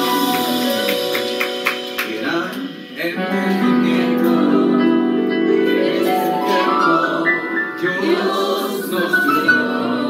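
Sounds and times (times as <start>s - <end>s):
group singing a hymn: 3.0s - 10.0s.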